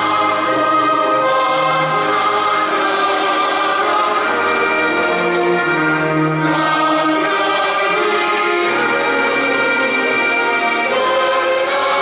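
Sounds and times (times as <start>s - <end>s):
choir singing held notes: 0.0s - 12.0s
orchestral backing: 0.0s - 12.0s.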